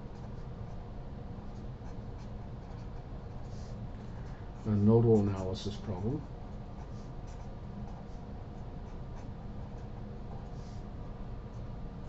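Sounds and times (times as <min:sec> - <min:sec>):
steady low hum: 0:00.0 - 0:12.0
marker scratching on paper: 0:01.5 - 0:05.3, 0:06.4 - 0:10.8.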